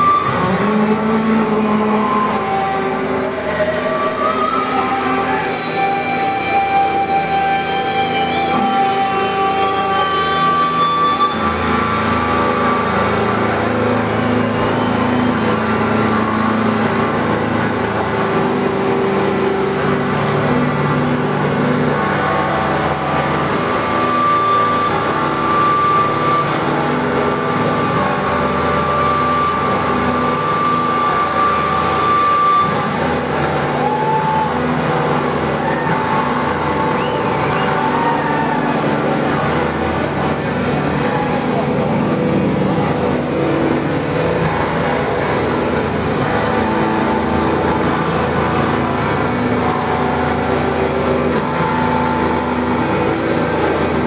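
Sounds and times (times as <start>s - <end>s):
distorted electric guitars: 0.0s - 54.0s.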